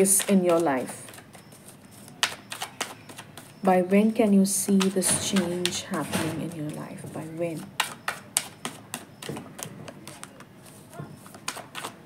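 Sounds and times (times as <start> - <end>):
cards being shuffled: 0.0 - 3.6, 7.6 - 12.0.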